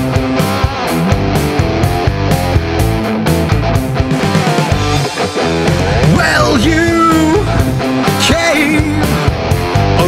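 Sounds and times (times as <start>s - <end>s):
bass: 0.0s - 10.0s
distorted electric guitars: 0.0s - 10.0s
drums: 0.0s - 10.0s.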